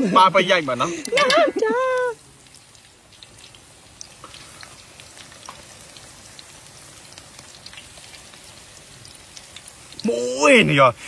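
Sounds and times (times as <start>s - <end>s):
food sizzling in oil: 0.0s - 11.0s
oil crackling: 0.0s - 11.0s.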